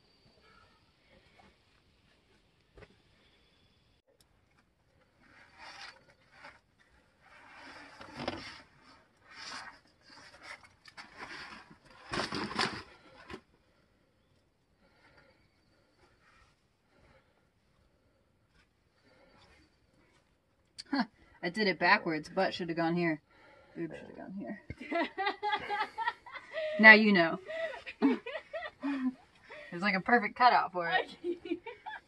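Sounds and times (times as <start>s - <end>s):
backpack scraping against rock: 5.2s - 13.4s.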